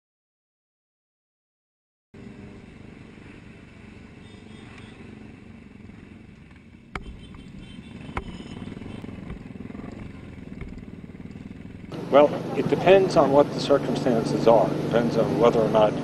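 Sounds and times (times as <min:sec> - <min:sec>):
motorcycle engines: 0:02.2 - 0:16.0
sharp knocks: 0:06.9 - 0:11.9.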